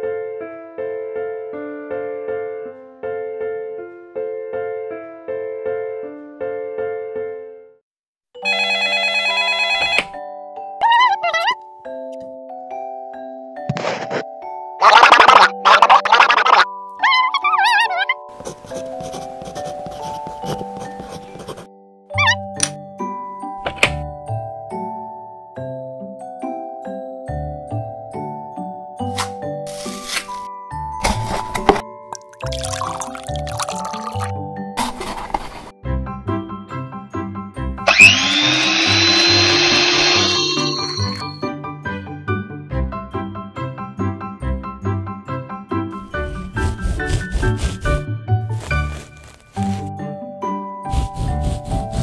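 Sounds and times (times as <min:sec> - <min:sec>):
telephone bell ringing: 0:08.4 - 0:10.2
melodic background music: 0:10.0 - 0:35.1, 0:41.2 - 0:52.0
squeaky gliding voice-like sound: 0:10.8 - 0:11.6, 0:14.8 - 0:18.3, 0:22.2 - 0:22.4
liquid pouring into a bowl: 0:32.2 - 0:34.3.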